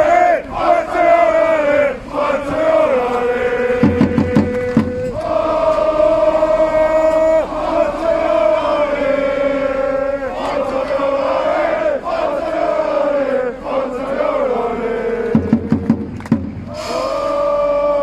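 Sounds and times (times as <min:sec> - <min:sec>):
crowd chanting in unison: 0:00.0 - 0:15.9, 0:16.7 - 0:18.0
sharp hits: 0:15.4 - 0:17.0.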